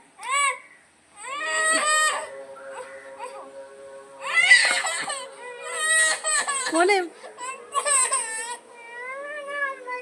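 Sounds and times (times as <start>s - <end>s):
small child crying: 1.2s - 2.3s, 4.2s - 10.0s.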